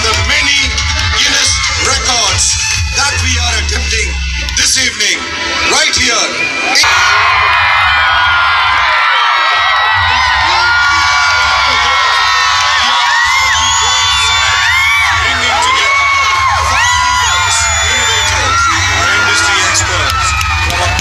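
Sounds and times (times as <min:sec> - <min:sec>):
music playing: 0:00.0 - 0:21.0
crowd cheering and whooping: 0:06.6 - 0:21.0.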